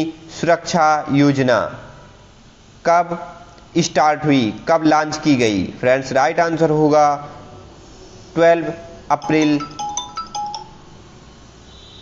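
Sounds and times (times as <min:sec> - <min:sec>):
bell-like chime notes: 0:09.2 - 0:10.9.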